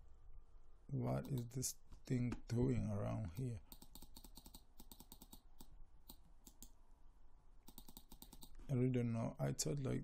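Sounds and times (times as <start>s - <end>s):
computer keys clicking: 1.2s - 1.6s, 3.3s - 6.8s, 7.6s - 8.6s.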